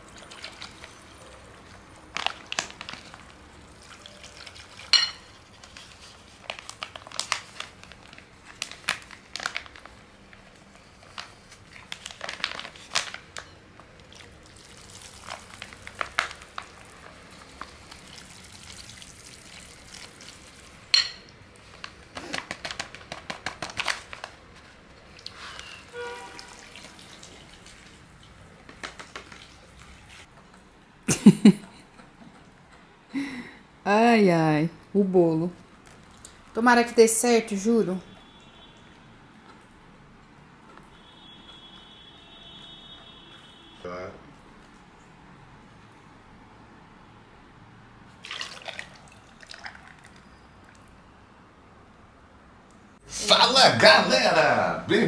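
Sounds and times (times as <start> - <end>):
whisk clinking against glass bowl: 4.9 - 5.3.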